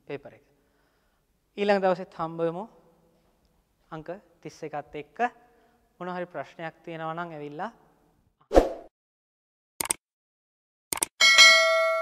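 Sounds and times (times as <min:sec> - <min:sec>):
quick clicks: 0:09.8 - 0:10.0, 0:10.9 - 0:11.1.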